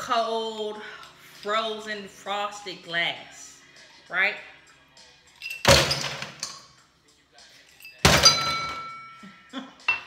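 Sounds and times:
glass ringing: 0:07.8 - 0:09.2.

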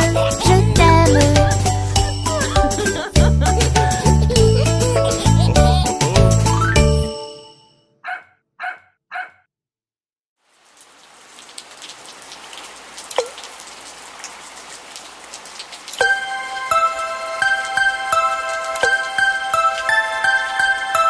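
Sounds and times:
rain pattering: 0:00.0 - 0:06.6, 0:10.4 - 0:21.0
music: 0:00.0 - 0:07.7, 0:16.0 - 0:21.0
water drop plop: 0:13.1 - 0:13.5.

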